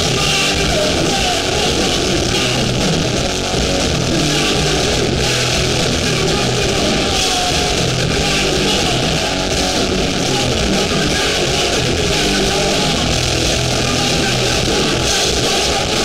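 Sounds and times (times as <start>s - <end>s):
bass guitar: 0.0s - 16.0s
distorted electric guitars: 0.0s - 16.0s
drums: 0.0s - 16.0s.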